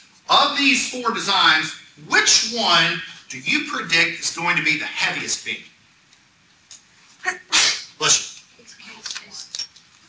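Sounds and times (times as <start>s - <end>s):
person sneezing: 7.2s - 8.1s.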